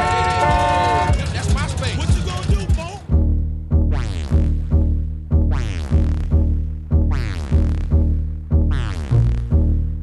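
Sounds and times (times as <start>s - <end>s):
car horn blaring: 0.0s - 1.6s
low thumps: 0.5s - 10.0s.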